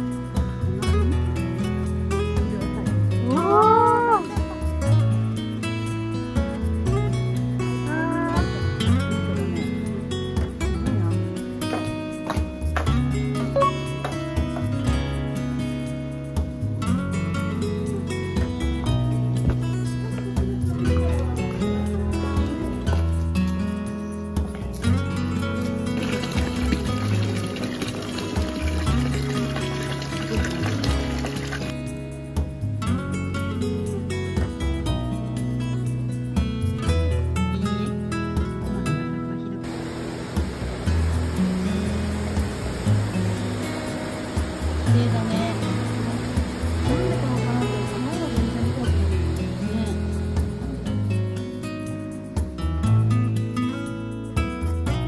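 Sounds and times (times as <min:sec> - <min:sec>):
acoustic guitar music: 0:00.0 - 0:55.0
water pouring from a spout: 0:25.5 - 0:32.0, 0:39.6 - 0:50.0.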